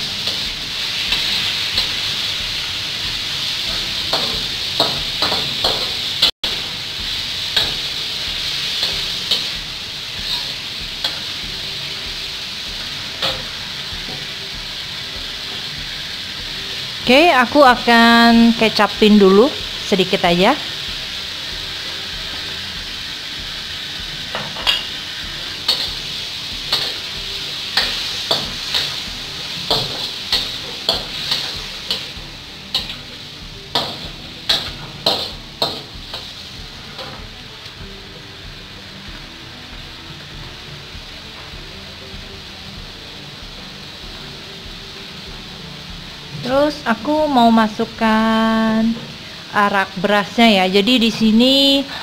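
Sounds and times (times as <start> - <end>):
food sizzling in a wok: 0.0 - 52.0
metal spatula scraping wok: 7.1 - 11.4, 24.5 - 33.1.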